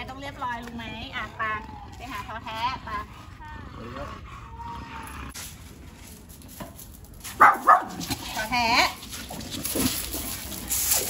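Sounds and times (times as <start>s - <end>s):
dog barking: 7.4s - 8.0s.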